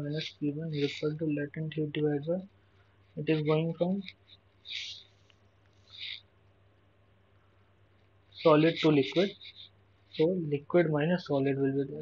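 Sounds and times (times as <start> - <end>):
faint hum and hiss: 0.0 - 12.0.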